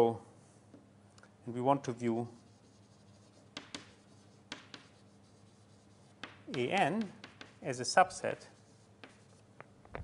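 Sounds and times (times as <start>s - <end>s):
faint room hum: 0.0s - 10.0s
taps of writing on a board: 3.2s - 7.8s, 9.0s - 9.4s.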